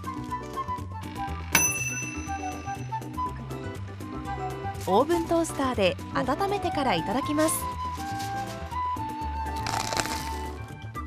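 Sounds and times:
background music: 0.0 - 11.0
timer bell dinging: 1.6 - 3.4.

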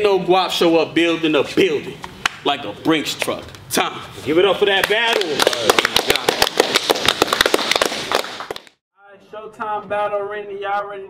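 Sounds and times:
people clapping: 4.7 - 8.8.

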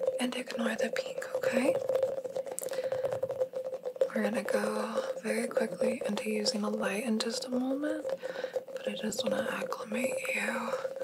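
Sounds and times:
tacky clicks of rubbery balls: 0.0 - 11.0.

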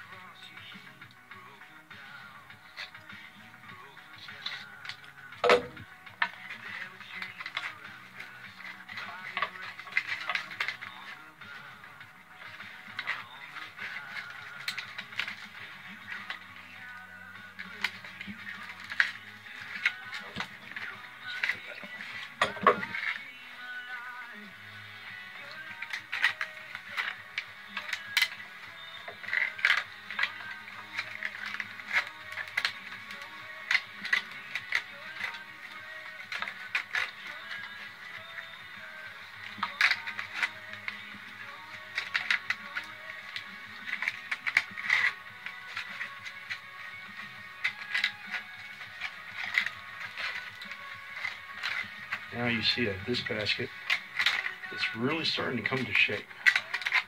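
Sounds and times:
faint music: 0.0 - 57.0
wood splits clicking and scraping: 0.0 - 57.0.

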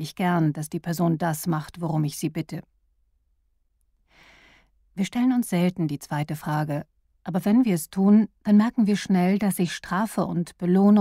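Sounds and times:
faint intake of breath: 4.1 - 4.7.

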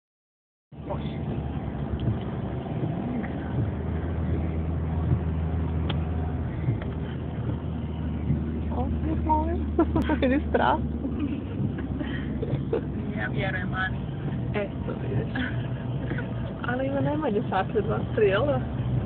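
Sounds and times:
car engine and road drone: 0.7 - 19.0.

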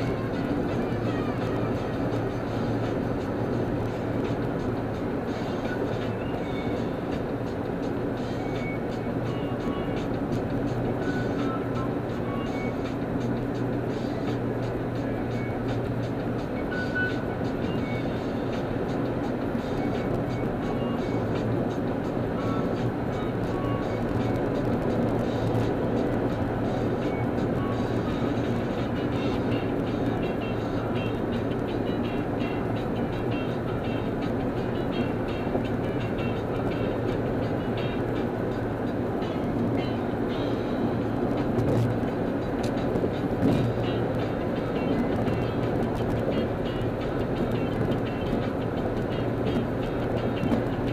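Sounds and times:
car road and engine noise: 0.0 - 50.9
music playing: 0.0 - 50.9.

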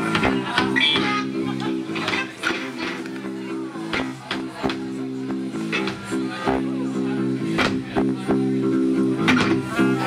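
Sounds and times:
drum and cymbal hits: 3.8 - 8.6.

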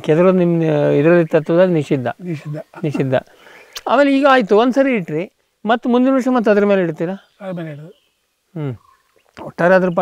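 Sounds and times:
man talking: 0.0 - 8.0, 9.4 - 10.0.

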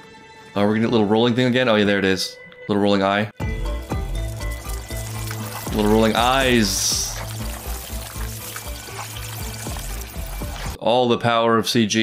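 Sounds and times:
soft watery sound effects: 3.6 - 10.8.

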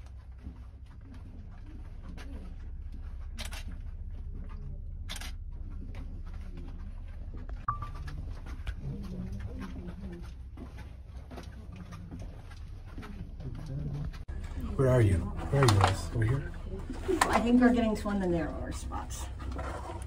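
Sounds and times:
low steady rumble: 0.0 - 20.0.

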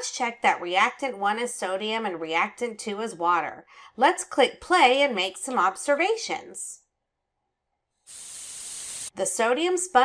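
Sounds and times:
high fizzing hiss: 8.1 - 9.1.

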